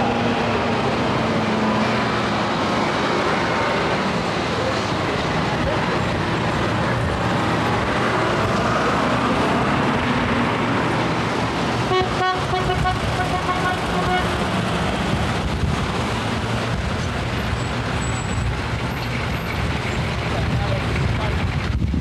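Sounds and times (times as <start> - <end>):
traffic rumble: 0.0 - 22.0
car horn toots: 11.9 - 14.3.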